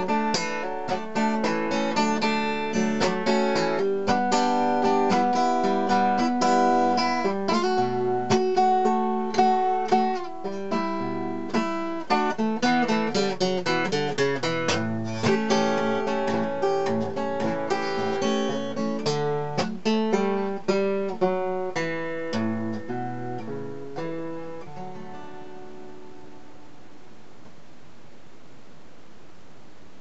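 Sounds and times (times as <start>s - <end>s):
acoustic guitar blues playing: 0.0s - 27.1s.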